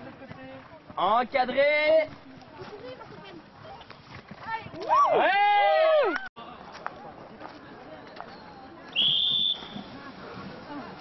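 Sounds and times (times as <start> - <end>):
short whistle blast: 9.0 - 9.9.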